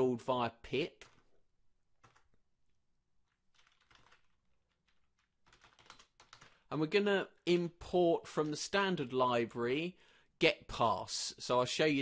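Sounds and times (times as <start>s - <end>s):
faint keyboard typing: 1.0s - 6.7s.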